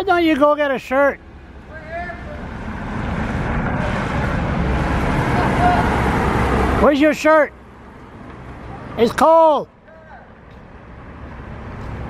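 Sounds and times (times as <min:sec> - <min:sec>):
vehicle passing: 0:01.1 - 0:12.0.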